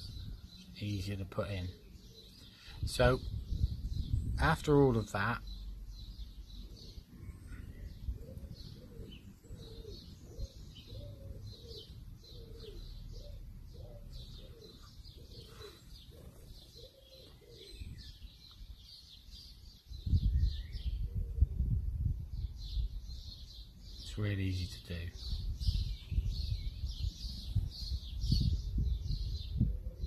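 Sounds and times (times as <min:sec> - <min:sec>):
low rumble on microphone: 0:00.0 - 0:00.5, 0:02.6 - 0:16.8, 0:19.9 - 0:23.6, 0:25.1 - 0:30.0
songbirds chirping: 0:00.0 - 0:30.0
pigeon cooing: 0:06.6 - 0:18.3, 0:21.0 - 0:21.6, 0:29.6 - 0:30.0.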